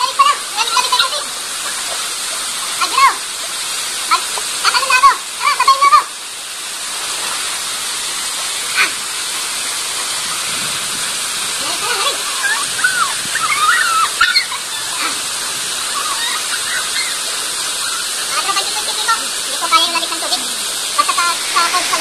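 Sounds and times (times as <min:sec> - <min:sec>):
waterfall rushing: 0:00.0 - 0:22.0.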